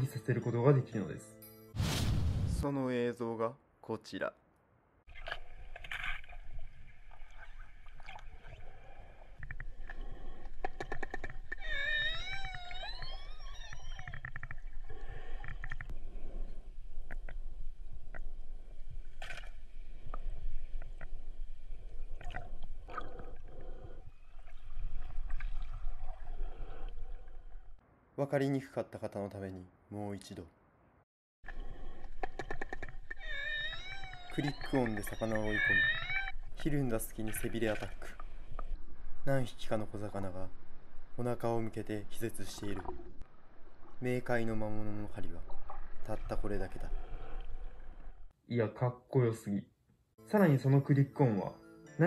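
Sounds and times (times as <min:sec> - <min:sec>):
killer whale gliding call: 0:11.6 - 0:15.7, 0:33.2 - 0:36.4
killer whale echolocation clicks: 0:31.5 - 0:35.2.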